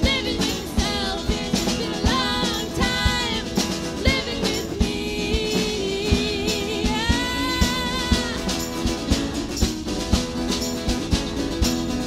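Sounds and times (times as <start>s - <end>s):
women singing: 0.0s - 9.0s
steady drum beat: 0.0s - 12.0s
strummed acoustic guitar: 0.0s - 12.0s.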